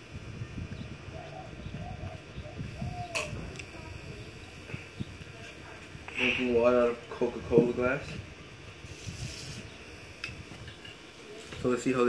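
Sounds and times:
bird cooing: 0.7s - 3.6s.

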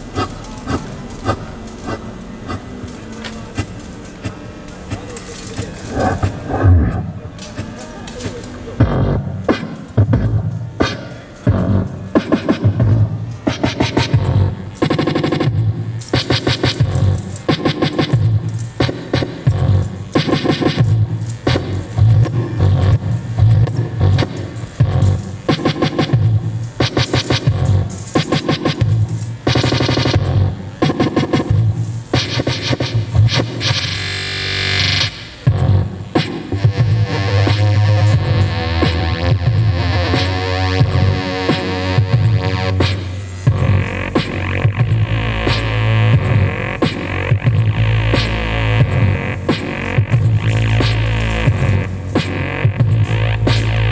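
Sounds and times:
beatboxing into a microphone: 0.0s - 34.2s, 34.9s - 53.9s
heavy bass: 0.0s - 53.9s
synthesizer: 0.0s - 53.9s.

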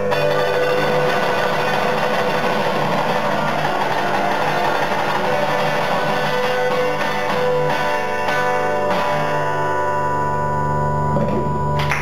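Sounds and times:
acoustic guitar blues strumming: 0.0s - 9.9s.

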